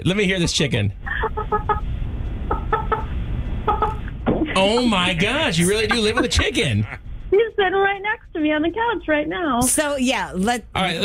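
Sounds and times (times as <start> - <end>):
rooster clucking over telephone: 1.1 - 1.8, 3.7 - 4.0.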